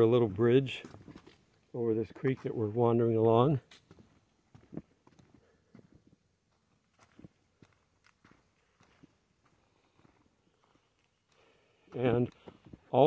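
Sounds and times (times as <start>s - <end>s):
faint footsteps: 0.0s - 13.0s.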